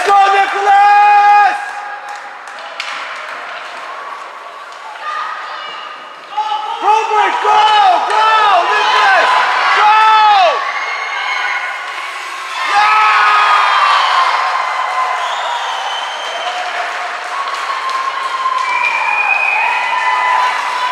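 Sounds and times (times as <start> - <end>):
spectators shouting and cheering: 0.0 - 20.9.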